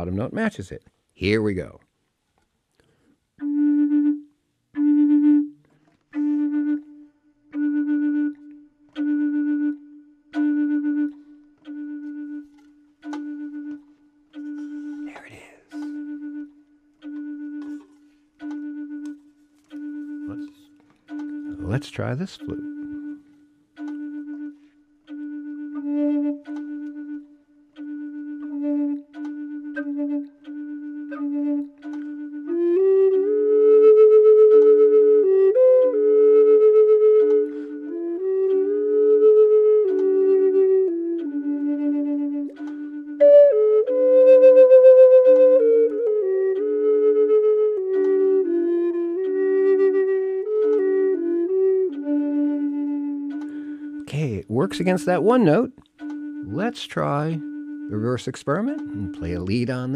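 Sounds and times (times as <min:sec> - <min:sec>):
flute melody: 0:00.0 - 0:00.6, 0:03.4 - 0:59.9
low flute note: 0:03.4 - 0:59.9.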